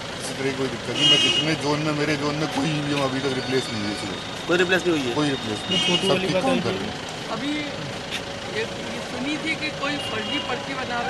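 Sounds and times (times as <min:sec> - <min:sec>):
car engine idling: 0:00.0 - 0:11.0
person speaking: 0:05.6 - 0:07.0.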